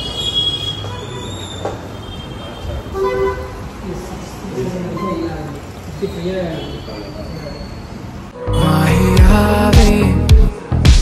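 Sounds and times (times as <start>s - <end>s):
vehicle horn toot: 0.0s - 3.7s
street traffic: 0.0s - 9.7s.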